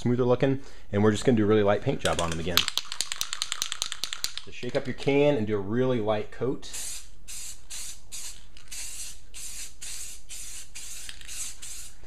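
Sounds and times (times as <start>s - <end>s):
spray can hissing in bursts: 6.7s - 12.0s.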